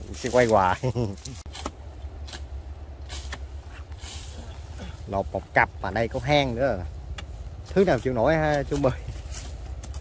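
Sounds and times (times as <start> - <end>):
short rustling: 6.1 - 10.0.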